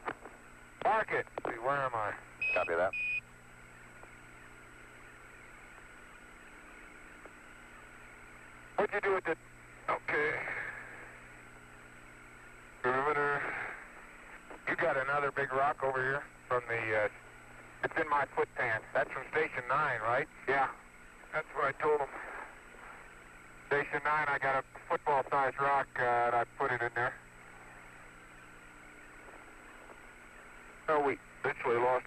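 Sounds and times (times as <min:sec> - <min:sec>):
radio hiss and hum: 0:00.0 - 0:32.0
man's voice over radio: 0:00.8 - 0:03.0, 0:08.7 - 0:11.2, 0:12.8 - 0:27.8, 0:29.1 - 0:32.0.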